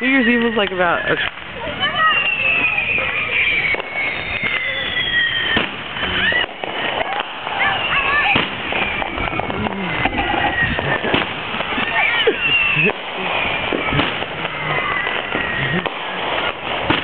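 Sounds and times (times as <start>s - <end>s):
fireworks popping and banging: 0.0s - 17.0s
whistling fireworks falling in pitch: 0.0s - 17.0s.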